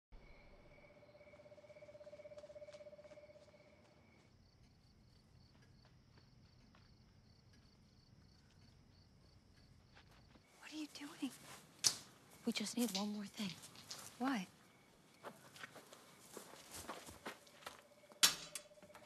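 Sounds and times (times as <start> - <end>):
crickets chirping: 0.2 - 19.0.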